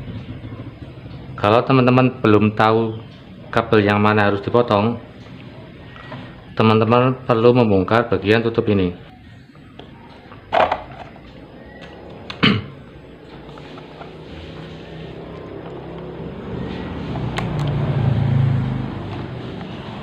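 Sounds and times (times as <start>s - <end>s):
low scraping and handling noise: 9.8s - 20.0s.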